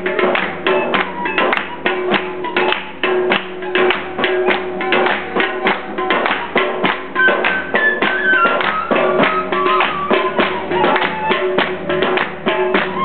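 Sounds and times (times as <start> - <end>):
drum strikes: 0.0 - 13.0
folk music: 0.0 - 13.0
hand claps: 0.0 - 13.0
high melody line: 0.0 - 13.0.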